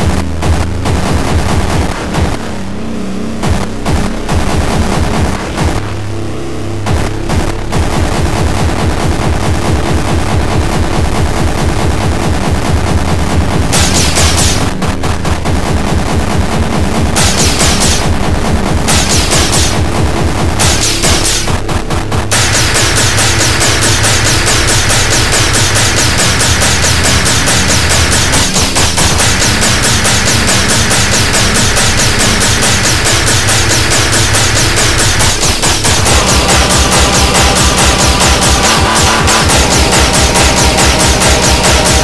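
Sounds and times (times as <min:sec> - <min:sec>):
rapid hard kick drums: 0:00.0 - 0:02.6, 0:03.2 - 0:06.2, 0:06.8 - 0:42.0
bass line: 0:00.0 - 0:42.0
high melodic synth layer: 0:26.6 - 0:42.0.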